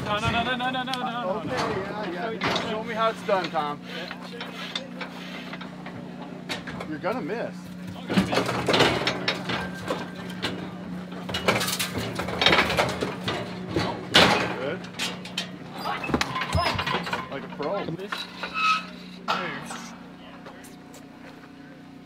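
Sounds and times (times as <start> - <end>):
steel clanks and rattles of chute: 0.0 - 21.2
steady low hum: 0.0 - 22.0
voices: 0.0 - 22.0.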